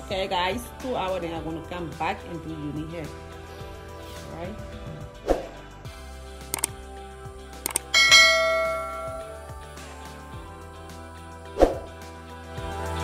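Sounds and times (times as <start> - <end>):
background music: 0.0 - 13.0
sharp clicks: 6.5 - 6.8, 7.6 - 7.9
bell-like ding: 8.0 - 9.4.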